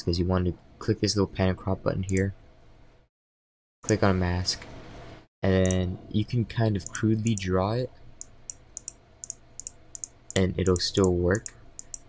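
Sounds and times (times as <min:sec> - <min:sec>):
computer mouse clicking: 0:06.8 - 0:07.5, 0:08.2 - 0:12.0.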